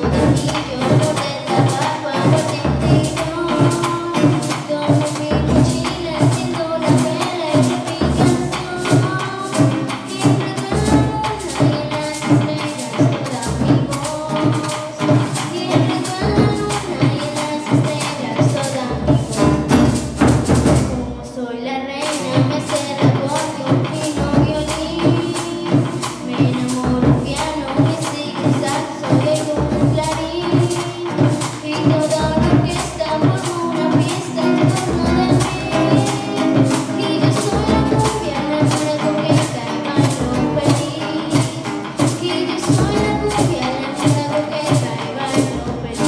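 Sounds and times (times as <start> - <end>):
hand drums beating: 0.0 - 21.2, 22.0 - 46.0
metal percussion tube rhythm: 0.0 - 21.2, 22.0 - 46.0
acoustic guitar strumming: 0.0 - 46.0
girl singing: 0.0 - 46.0.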